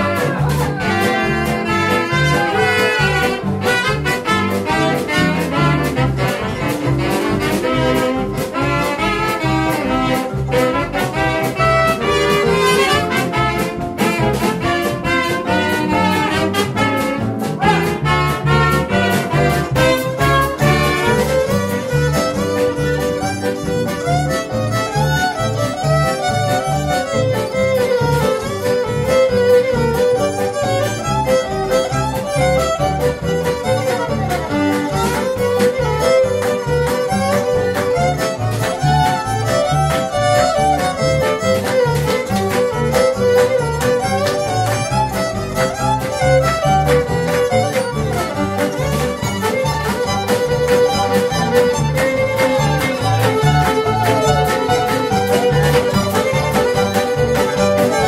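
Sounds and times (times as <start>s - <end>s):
fiddle lead melody: 0.0s - 58.0s
rhythm guitars: 0.0s - 58.0s
steel guitar: 0.0s - 58.0s
upright bass: 0.0s - 58.0s.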